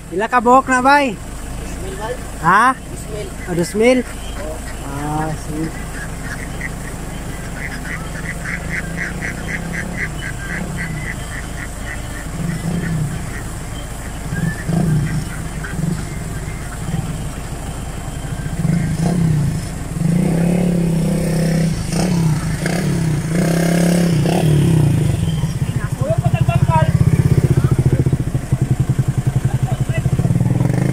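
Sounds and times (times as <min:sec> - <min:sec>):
ducks calling: 0:00.0 - 0:30.9
small motorcycle engine: 0:00.0 - 0:30.9.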